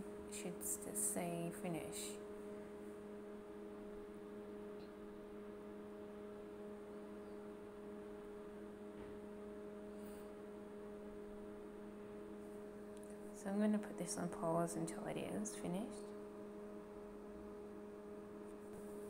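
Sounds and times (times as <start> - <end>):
microwave cooling fan hum: 0.0 - 19.0.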